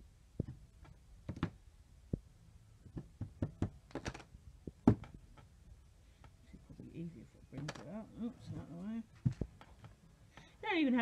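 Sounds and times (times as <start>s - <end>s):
acrylic block knocking and tapping: 2.8s - 5.5s.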